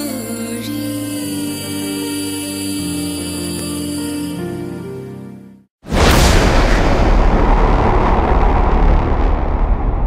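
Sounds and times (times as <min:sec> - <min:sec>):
cinematic boom: 0:05.9 - 0:10.0
deep rumble: 0:05.9 - 0:10.0.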